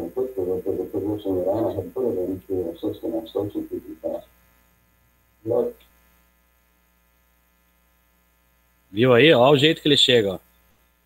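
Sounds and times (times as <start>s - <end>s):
faint electrical mains hum: 0.0s - 11.0s.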